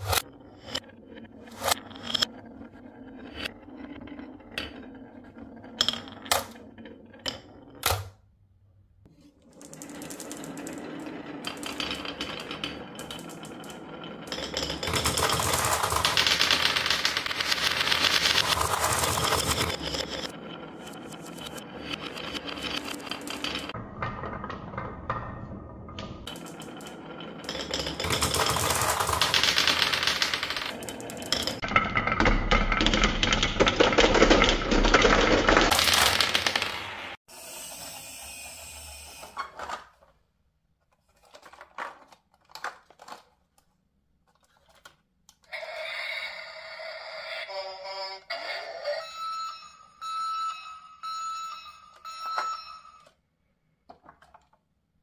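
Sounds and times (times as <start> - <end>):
marbles rattling down wooden tracks: 9.5 - 37.0.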